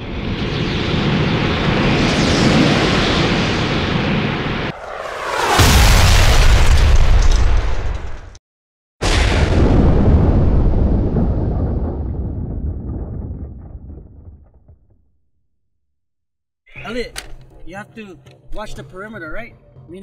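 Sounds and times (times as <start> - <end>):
loud explosion: 0.0 - 8.4, 9.0 - 15.2
falling whoosh: 0.1 - 7.1.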